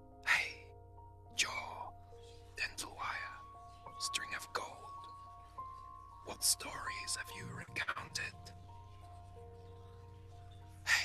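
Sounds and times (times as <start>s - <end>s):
soft background music: 0.0s - 11.0s
person whispering: 0.2s - 0.6s, 1.4s - 1.9s, 2.6s - 3.4s, 4.0s - 5.0s, 6.3s - 8.5s.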